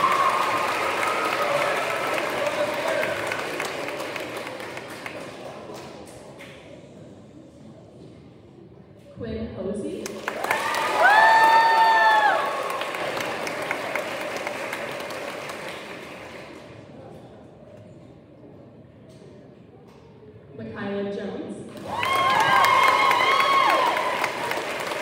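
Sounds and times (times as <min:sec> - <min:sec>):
high woo cheers: 0:00.0 - 0:02.0, 0:10.4 - 0:12.8, 0:21.8 - 0:24.6
audience applauding: 0:00.0 - 0:06.0, 0:10.0 - 0:16.8, 0:21.7 - 0:25.0.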